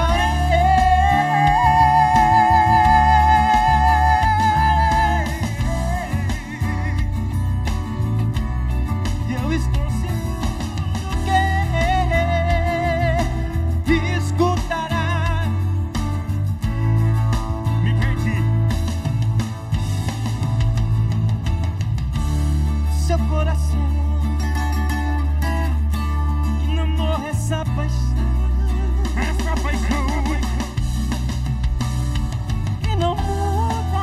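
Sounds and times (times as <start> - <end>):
person singing with vibrato: 0.0 - 7.4, 9.3 - 15.9, 26.4 - 30.8, 32.8 - 34.0
steady low beat: 0.0 - 22.9
acoustic guitar: 0.0 - 34.0.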